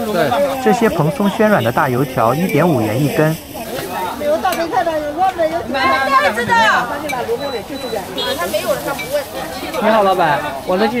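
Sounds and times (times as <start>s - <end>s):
frying oil hissing: 0.0s - 11.0s
indistinct chatter: 0.0s - 11.0s.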